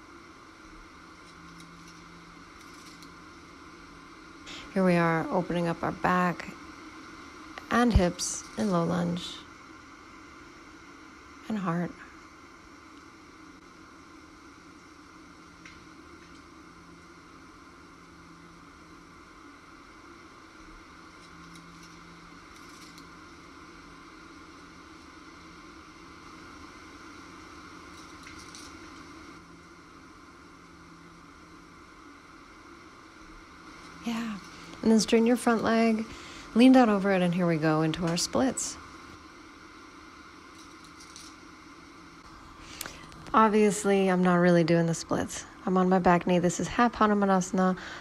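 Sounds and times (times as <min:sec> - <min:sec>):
outdoor background hiss: 0:00.0 - 0:48.0.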